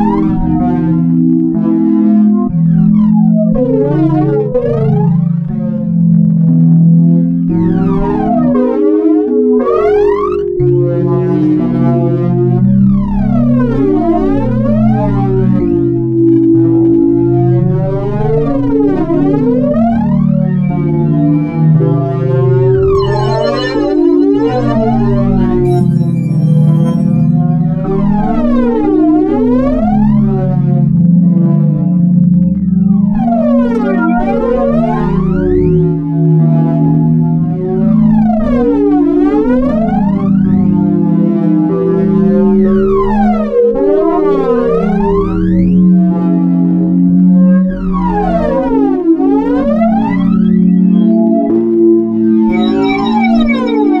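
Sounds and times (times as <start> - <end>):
low synth drone chords: 0.0 - 54.0
sweeping synth tones: 9.4 - 30.0, 47.5 - 54.0
high glittering synth layer: 22.4 - 27.7, 52.5 - 54.0.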